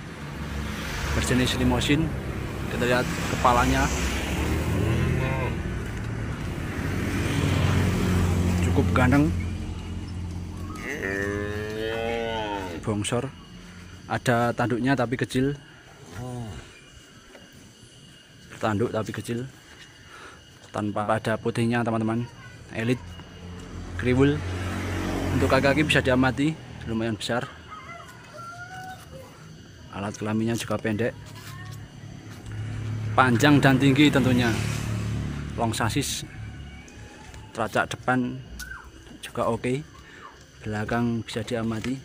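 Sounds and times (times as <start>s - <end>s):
vehicle engine humming: 0.0s - 15.8s, 22.2s - 27.7s, 29.1s - 42.0s
calf mooing: 4.9s - 5.6s, 10.7s - 12.8s.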